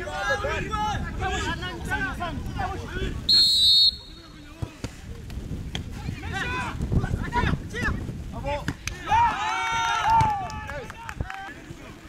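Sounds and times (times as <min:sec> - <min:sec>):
football players shouting: 0:08.9 - 0:12.0.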